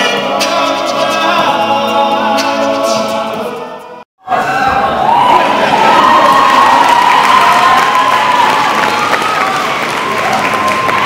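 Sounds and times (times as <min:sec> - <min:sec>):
group singing a cappella: 0:00.0 - 0:04.0.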